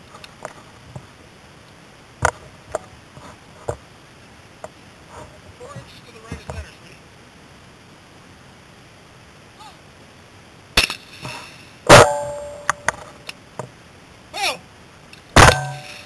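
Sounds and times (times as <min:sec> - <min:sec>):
shotgun blasts: 0:11.9 - 0:12.9, 0:15.4 - 0:16.0.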